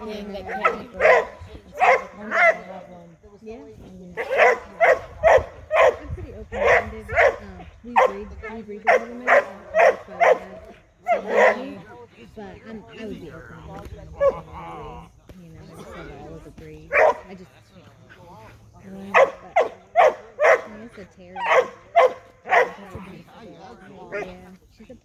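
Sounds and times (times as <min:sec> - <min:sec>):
dog barking sharply: 0:04.2 - 0:06.0, 0:21.4 - 0:22.8.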